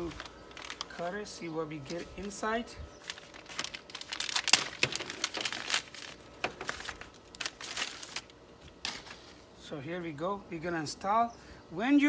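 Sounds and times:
packaging crinkling and tearing: 0.0s - 2.4s, 3.0s - 9.5s.

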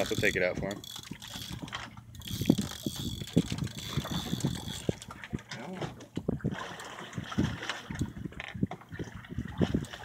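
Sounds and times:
fishing reel clicking and knocking: 0.0s - 5.4s
water: 0.0s - 10.0s
wind: 0.0s - 10.0s.

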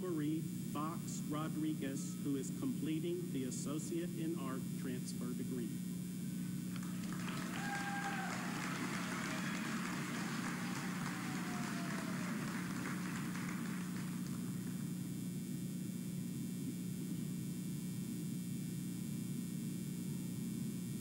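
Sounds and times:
sound system hum: 0.0s - 17.2s
audience applauding: 6.7s - 14.9s
cheering whoops: 6.8s - 14.7s.

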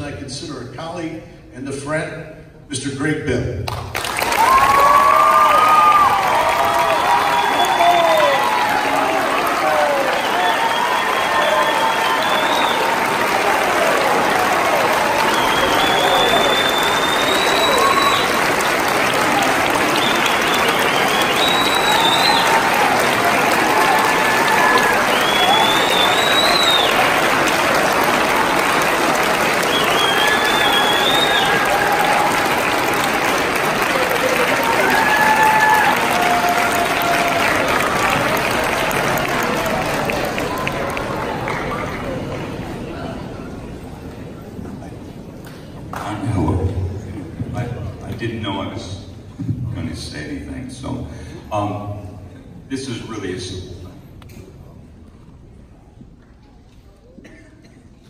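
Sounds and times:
audience applauding: 3.7s - 43.6s.

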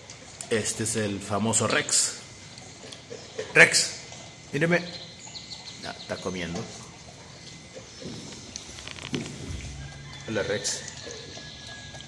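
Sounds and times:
dog crunching kibble: 6.3s - 11.9s.

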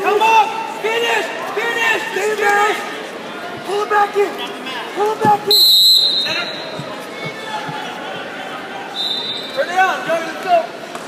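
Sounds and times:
busy gymnasium noise: 0.0s - 11.0s
short high whistle blast: 5.5s - 6.7s.

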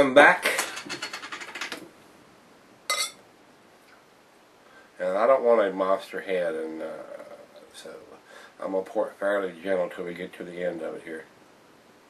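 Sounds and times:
glass clink: 2.9s - 3.2s.

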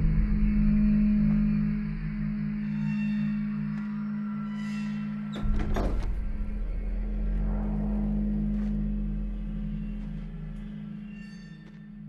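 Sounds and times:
low droning horror score: 0.0s - 12.0s.

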